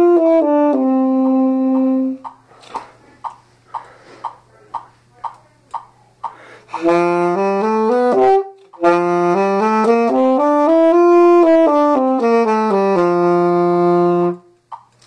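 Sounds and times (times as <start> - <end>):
tenor saxophone playing a scale: 0.0 - 2.3, 6.7 - 14.6.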